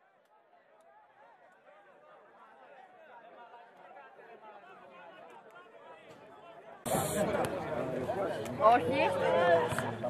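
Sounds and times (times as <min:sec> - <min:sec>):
faint chatter of people: 0:00.1 - 0:10.0.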